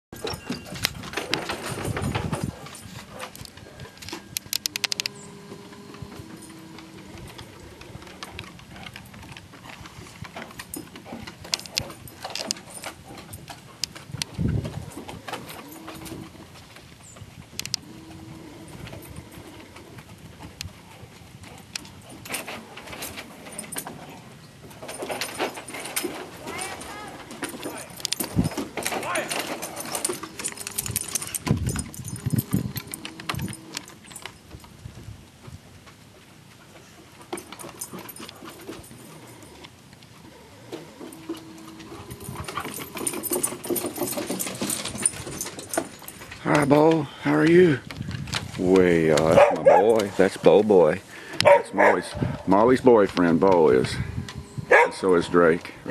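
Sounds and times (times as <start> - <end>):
collar tags jingling: 0.1 - 35.0, 36.8 - 55.9
dogs clicking and rustling: 0.2 - 55.9.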